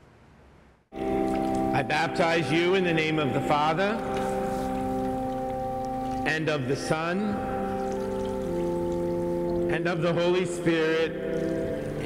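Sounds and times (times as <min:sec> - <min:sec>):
background music chord: 0:00.9 - 0:12.0
water splashing and trickling: 0:01.0 - 0:12.0.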